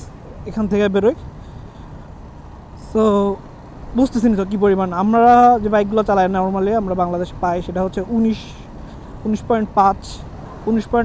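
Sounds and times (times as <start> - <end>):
wind and road noise: 0.0 - 11.0
man's voice: 4.0 - 11.0.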